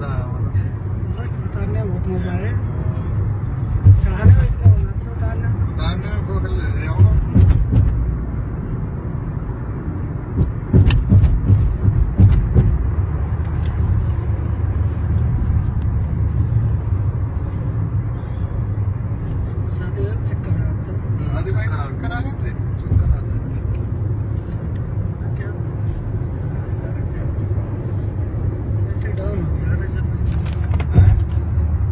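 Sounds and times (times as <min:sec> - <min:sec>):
car engine rumble: 0:00.0 - 0:31.9
road noise: 0:00.0 - 0:31.9.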